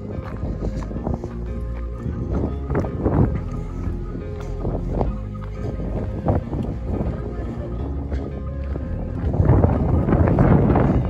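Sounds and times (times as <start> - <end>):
background music: 0.0 - 11.0
wind rumbling on microphone: 0.0 - 11.0.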